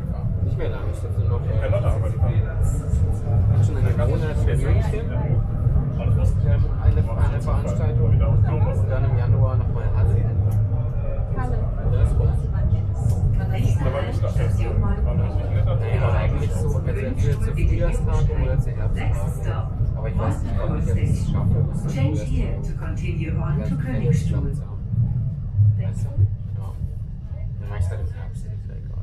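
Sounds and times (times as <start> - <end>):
funicular car rumbling: 0.0 - 29.0
passengers talking: 0.0 - 29.0.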